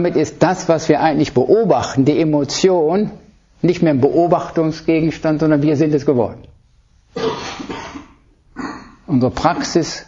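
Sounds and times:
person coughing: 0:07.2 - 0:09.0.

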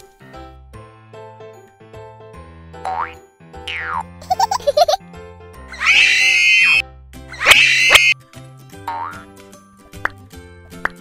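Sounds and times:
children's background music: 0:00.0 - 0:11.0
cartoon rising pitched sound: 0:05.7 - 0:08.2.

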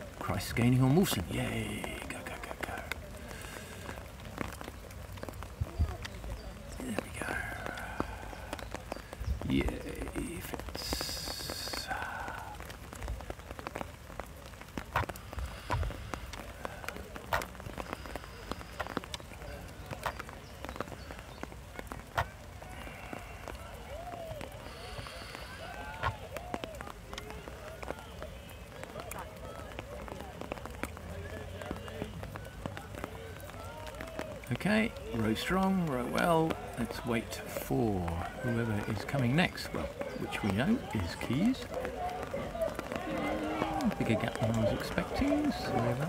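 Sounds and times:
faint distant voices: 0:00.0 - 0:46.0
outdoor background noise: 0:00.0 - 0:46.0.

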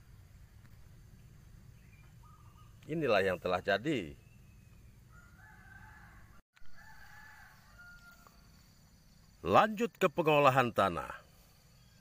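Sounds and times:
rooster crowing faintly: 0:05.1 - 0:08.6.

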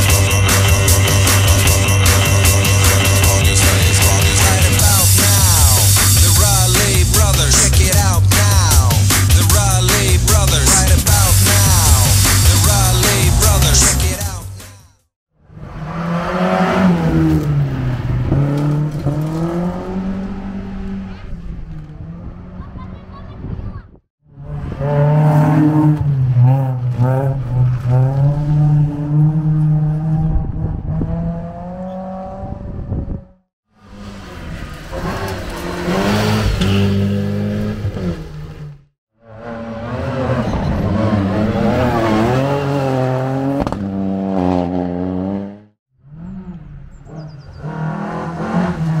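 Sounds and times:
rally car engines revving: 0:00.0 - 0:14.4, 0:15.5 - 0:23.7, 0:24.3 - 0:49.0.

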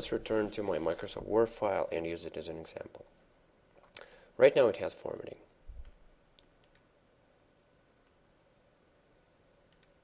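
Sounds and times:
faint computer mouse clicks: 0:05.8 - 0:06.9, 0:09.7 - 0:10.0.

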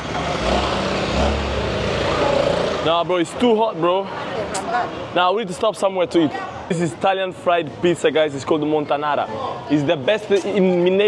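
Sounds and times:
vehicle passing by: 0:00.0 - 0:05.1.

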